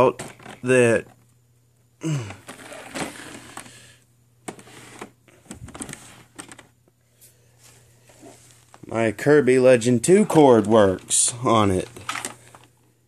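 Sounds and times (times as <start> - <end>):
handling rustling: 4.5 - 6.8, 10.2 - 12.7.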